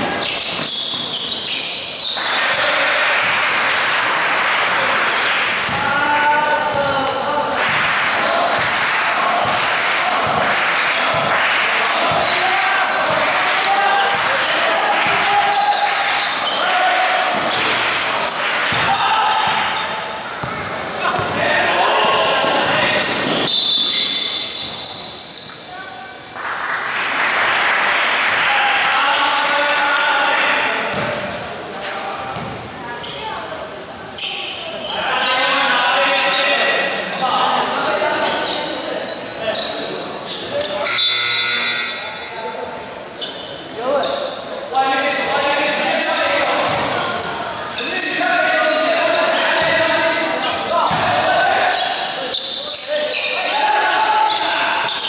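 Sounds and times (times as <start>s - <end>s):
people shouting: 7.8s - 19.9s, 45.9s - 52.3s, 52.9s - 55.0s
basketball bouncing on hardwood court: 9.4s - 11.4s, 18.7s - 19.7s, 20.4s - 21.4s, 30.9s - 31.2s, 32.4s - 32.7s, 46.6s - 47.0s, 50.9s - 51.1s.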